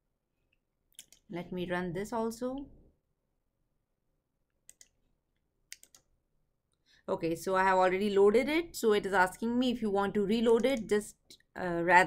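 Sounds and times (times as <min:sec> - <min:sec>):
faint computer clicks: 0:05.7 - 0:06.1.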